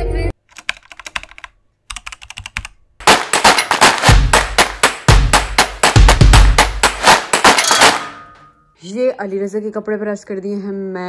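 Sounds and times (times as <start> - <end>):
keyboard typing clicks: 0.5 - 2.8
percussive intro music: 3.0 - 8.1.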